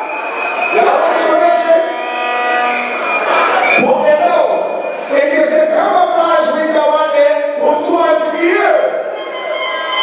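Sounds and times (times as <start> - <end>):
music: 0.0 - 3.8, 8.2 - 10.0.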